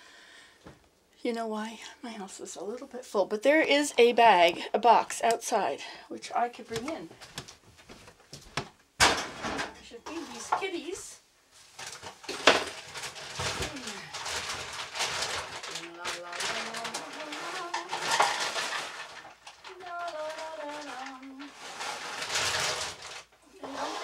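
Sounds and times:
household clutter rustling: 0:05.5 - 0:24.0.

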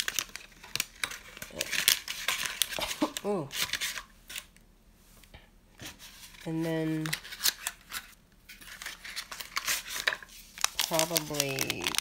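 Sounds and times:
paper packet clicking and rustling: 0:00.0 - 0:04.5, 0:06.9 - 0:12.0.

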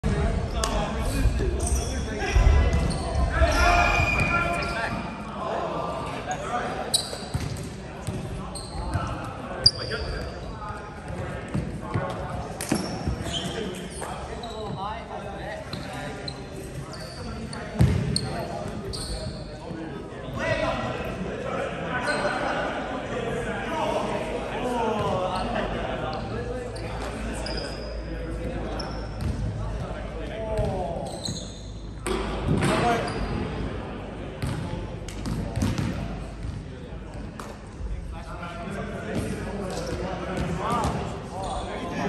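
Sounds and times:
voices echoing in a hall: 0:00.0 - 0:42.0
sneakers squeaking on wood: 0:02.6 - 0:05.1, 0:06.9 - 0:07.6, 0:08.5 - 0:10.4, 0:12.6 - 0:14.9, 0:15.7 - 0:19.4, 0:31.0 - 0:32.0.

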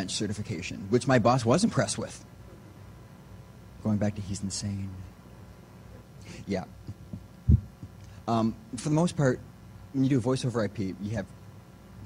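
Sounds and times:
man speaking: 0:00.0 - 0:02.2, 0:03.8 - 0:05.1, 0:06.4 - 0:06.8.

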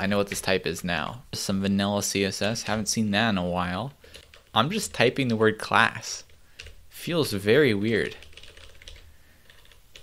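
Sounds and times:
computer keyboard typing: 0:02.3 - 0:03.0, 0:03.9 - 0:06.8, 0:07.8 - 0:10.0.

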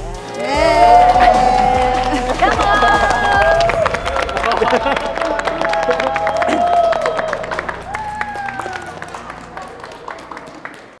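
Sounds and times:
background music: 0:00.0 - 0:11.0
group clapping: 0:00.2 - 0:11.0
people laughing: 0:00.6 - 0:07.7.

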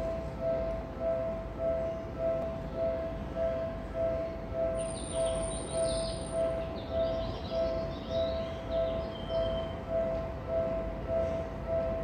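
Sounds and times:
railway warning bell ringing: 0:00.0 - 0:12.0
small birds chirping: 0:04.8 - 0:09.8.

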